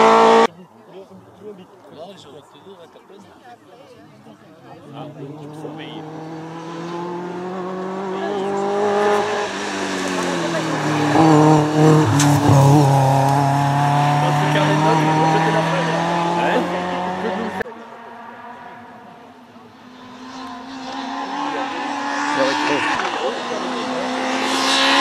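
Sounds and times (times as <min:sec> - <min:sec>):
sports car engine revving: 0:00.0 - 0:00.5, 0:05.0 - 0:25.0.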